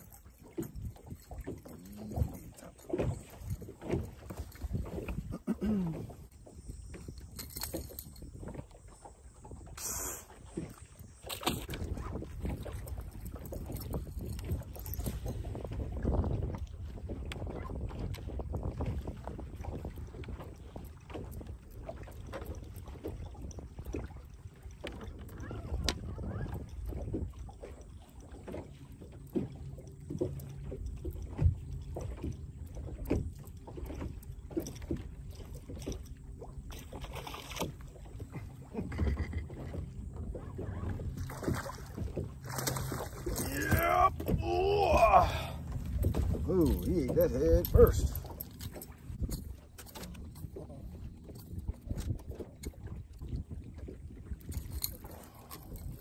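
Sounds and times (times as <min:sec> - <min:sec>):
wind buffeting microphone: 0:00.0 - 0:09.8, 0:10.5 - 0:28.0, 0:37.6 - 0:56.0
small waves slapping a hull: 0:00.0 - 0:56.0.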